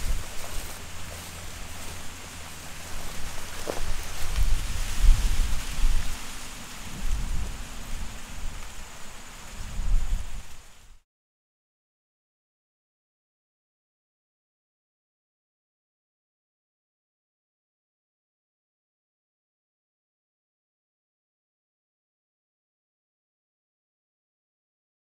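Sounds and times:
steady hiss: 0:00.0 - 0:11.0
wind buffeting microphone: 0:00.0 - 0:11.0.

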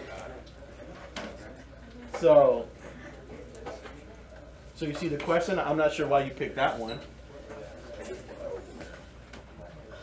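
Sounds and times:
steady room hum: 0:00.0 - 0:10.0.

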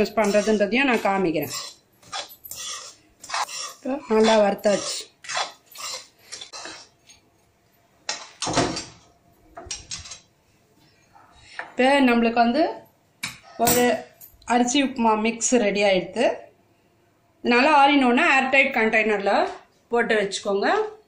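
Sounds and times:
spoon scraping kitchen vessels: 0:00.0 - 0:07.0.

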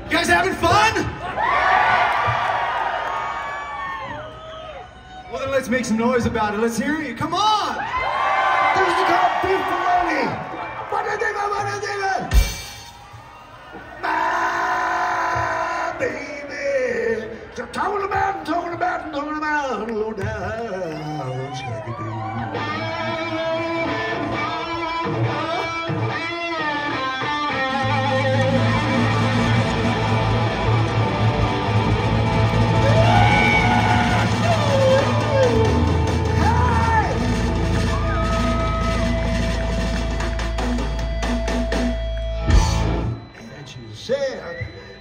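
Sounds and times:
electric guitar: 0:21.0 - 0:43.4.

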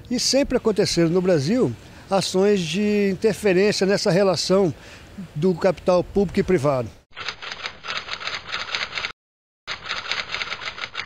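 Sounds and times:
typewriter key clatter: 0:09.7 - 0:11.0.

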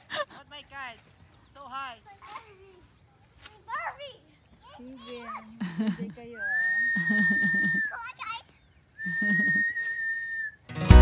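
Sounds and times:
high whistling tone: 0:06.4 - 0:08.0, 0:09.0 - 0:10.6.

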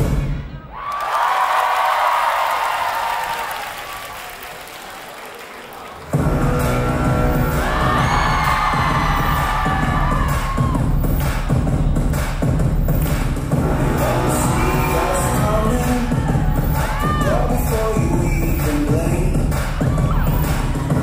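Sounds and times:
audience cheering: 0:00.6 - 0:11.6, 0:13.6 - 0:21.0
dance music with heavy beat: 0:06.0 - 0:21.0.

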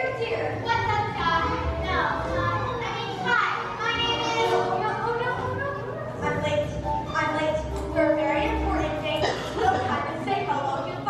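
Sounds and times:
children speaking: 0:00.0 - 0:11.0.

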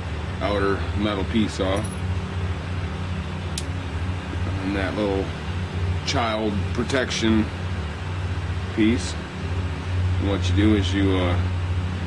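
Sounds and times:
low mechanical drone: 0:00.0 - 0:12.0
lighter hood click: 0:03.5 - 0:03.8.

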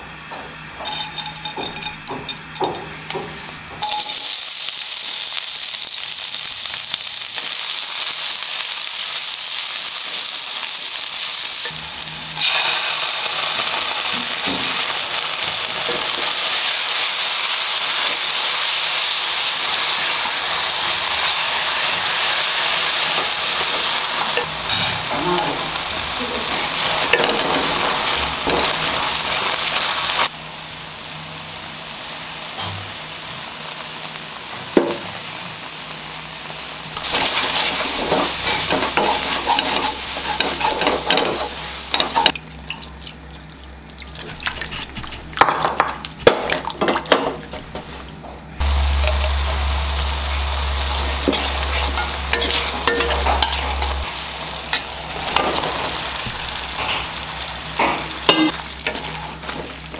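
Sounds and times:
onions sizzling in hot oil: 0:02.5 - 0:42.6, 0:48.6 - 0:59.9.

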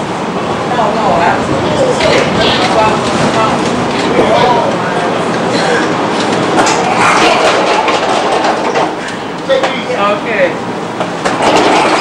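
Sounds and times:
train wheels rumbling on rails: 0:00.0 - 0:12.0
clicks over rail joints: 0:06.2 - 0:09.8, 0:11.0 - 0:12.0.

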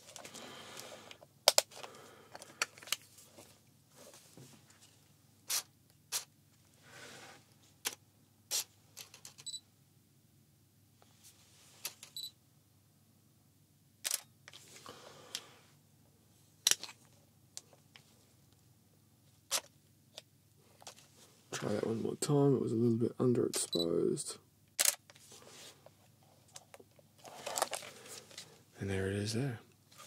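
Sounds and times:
camera shutter clicking: 0:14.0 - 0:14.3.

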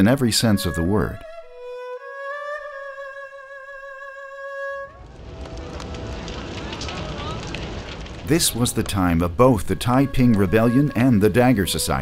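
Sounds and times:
fire crackling: 0:04.7 - 0:12.0
low rumble: 0:04.9 - 0:09.8
faint voices: 0:05.6 - 0:12.0.

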